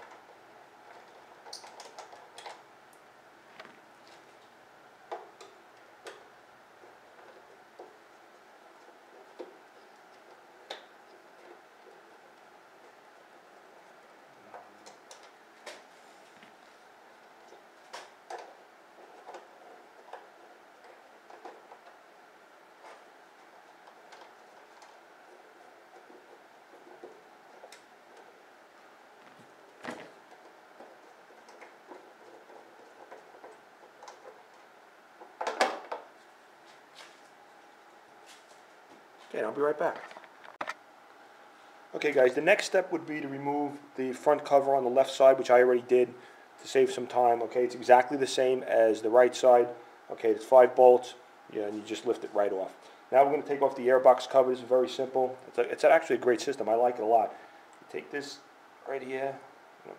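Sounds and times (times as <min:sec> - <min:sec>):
faint steady hiss: 0:00.0 - 0:59.9.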